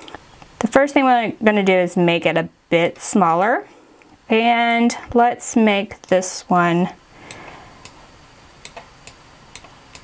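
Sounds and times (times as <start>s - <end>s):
faint steady hiss: 0.0s - 10.0s
computer mouse clicks: 8.6s - 10.0s.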